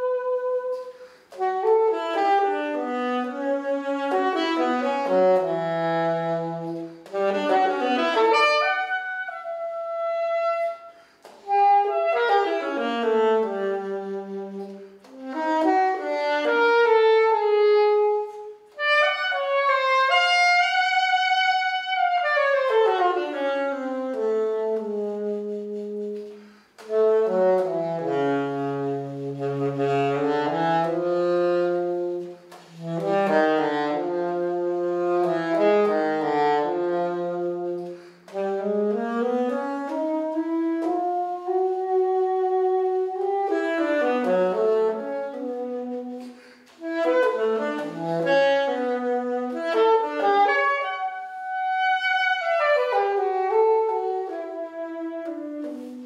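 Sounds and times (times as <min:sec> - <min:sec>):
saxophone solo melody: 0:00.0 - 0:56.0.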